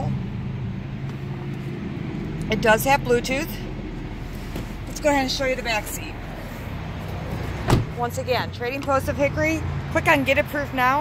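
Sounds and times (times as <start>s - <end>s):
low car cabin hum: 0.0s - 10.1s.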